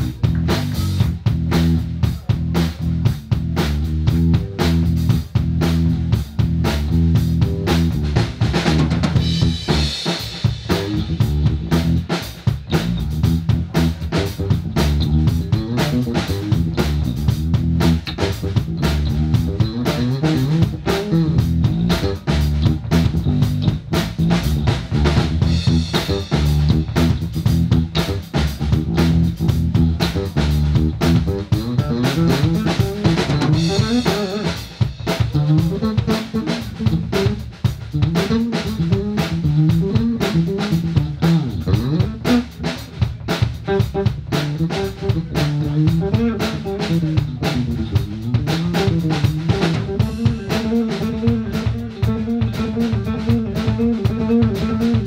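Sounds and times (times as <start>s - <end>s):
drum kit playing: 0.0s - 55.0s
electric bass solo: 0.0s - 55.0s.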